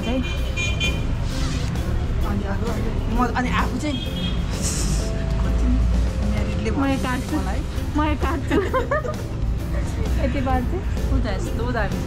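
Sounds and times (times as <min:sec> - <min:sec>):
vehicle horn: 0:00.0 - 0:01.2, 0:03.8 - 0:04.7
background music: 0:00.0 - 0:12.0.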